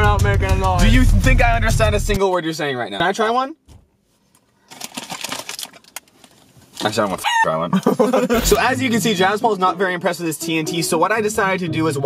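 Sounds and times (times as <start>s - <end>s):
plastic candy wrapper crinkling: 4.4s - 7.1s.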